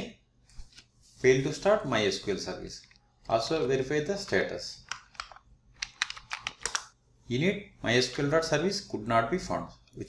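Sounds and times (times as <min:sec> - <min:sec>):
computer keyboard keystrokes: 0:04.8 - 0:06.9.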